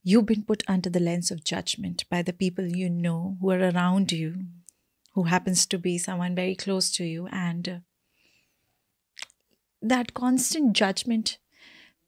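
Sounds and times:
woman speaking: 0.0 - 4.6, 5.2 - 7.8, 9.8 - 11.4
mouth click: 9.2 - 9.4.

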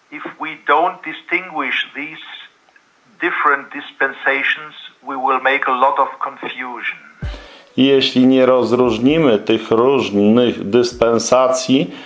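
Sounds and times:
man talking over video call: 0.1 - 12.0.

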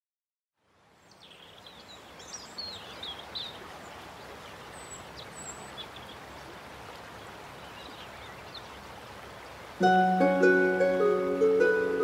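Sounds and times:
birds chirping: 1.0 - 9.3.

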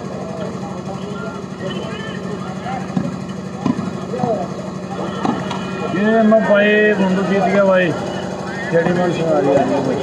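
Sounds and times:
people talking and calling out: 0.0 - 10.0
steady low hum: 0.0 - 10.0
volleyball being struck: 2.9 - 4.4, 5.1 - 5.6.

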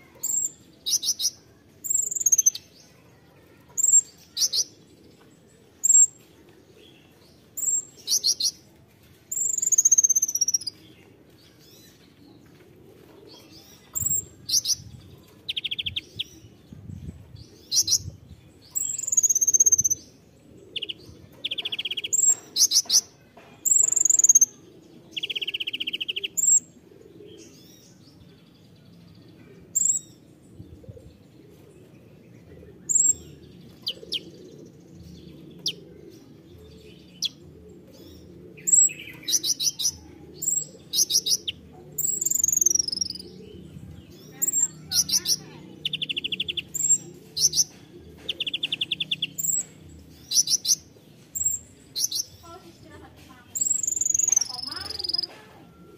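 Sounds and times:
buzzy bird trills: 53.5 - 55.7.

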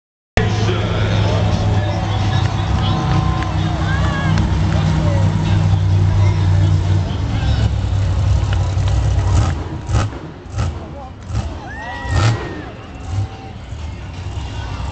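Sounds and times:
monster truck engine drone: 0.4 - 14.9
voices and crowd noise: 0.4 - 14.9.

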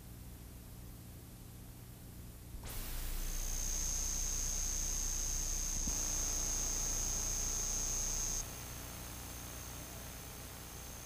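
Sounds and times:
low hum: 2.5 - 8.4
tape hiss: 2.5 - 11.0
high-pitched electronic whine: 2.6 - 9.7.

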